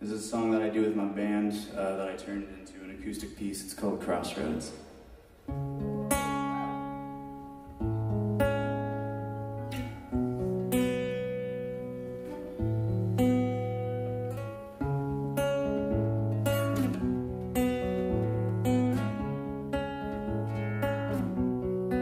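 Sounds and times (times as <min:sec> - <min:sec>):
acoustic guitar strumming chords: 0:05.3 - 0:22.0.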